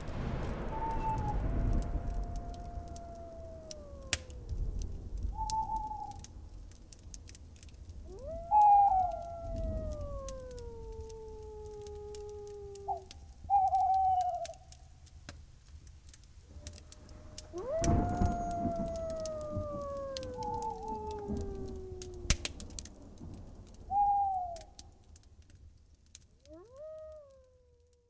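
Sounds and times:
low rumble: 0.0 - 7.3
faint clicks: 0.1 - 28.0
animal howls: 0.4 - 6.3, 8.0 - 14.8, 16.5 - 25.0, 26.4 - 28.0.

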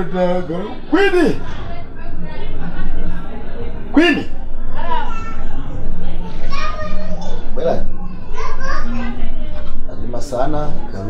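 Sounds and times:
children playing: 0.0 - 11.0.

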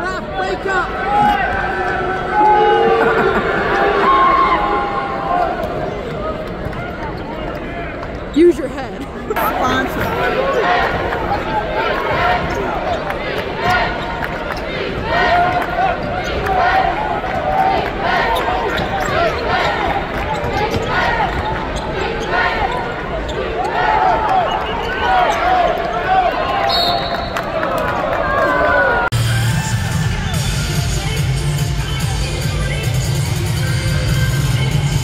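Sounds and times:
crowd voices in arena: 0.0 - 35.0.

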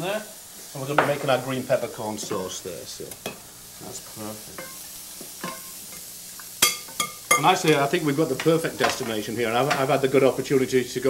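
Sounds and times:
onions sizzling in a saucepan: 0.0 - 11.0
wooden spoon stirring: 6.6 - 10.1.

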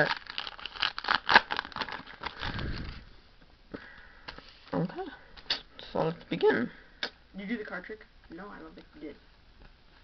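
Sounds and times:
foil wrapper crinkling: 0.0 - 3.1.

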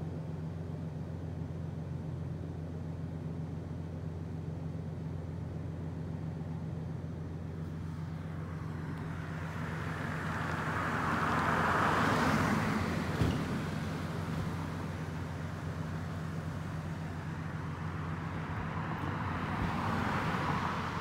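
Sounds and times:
car driving past: 8.3 - 15.0, 16.5 - 21.0.

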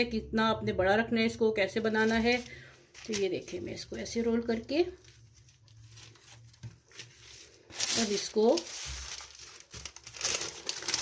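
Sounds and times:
paper crinkling and rustling: 1.9 - 11.0.

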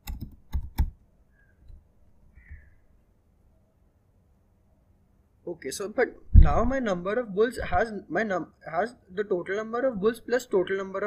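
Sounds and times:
laptop keyboard typing: 0.0 - 1.0.

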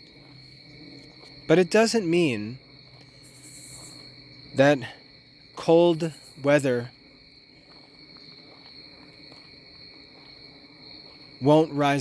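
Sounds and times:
faint two-tone whine: 0.0 - 12.0.

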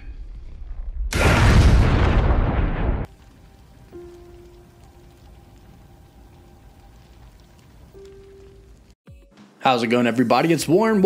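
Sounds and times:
crackling hiss: 3.0 - 9.0.

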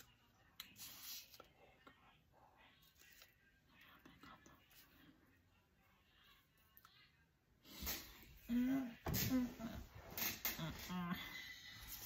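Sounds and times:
faint whispering: 0.1 - 12.0.

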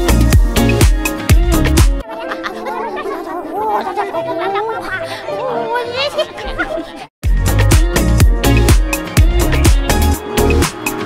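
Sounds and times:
high-pitched puppet voices chattering: 2.1 - 7.0.

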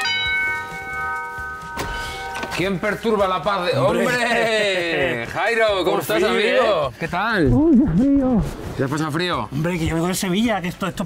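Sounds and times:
doorbell chime ringing: 0.0 - 3.1.

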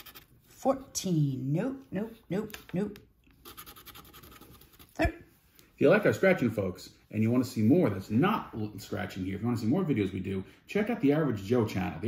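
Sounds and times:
plastic tool scratching ticket: 0.0 - 0.4, 3.4 - 5.0.

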